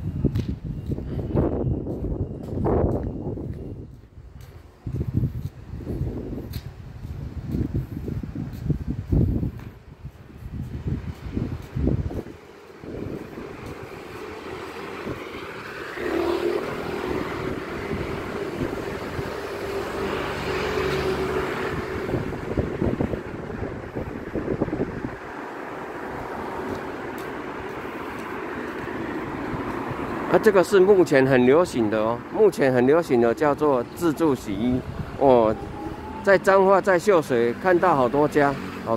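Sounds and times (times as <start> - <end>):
wind gusts on microphone: 0.0 - 38.9
car driving past: 14.3 - 23.0, 33.8 - 36.7.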